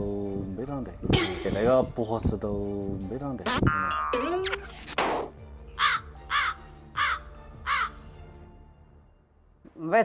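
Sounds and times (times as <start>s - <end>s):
soft background music: 0.0s - 10.0s
crow cawing: 5.8s - 8.1s.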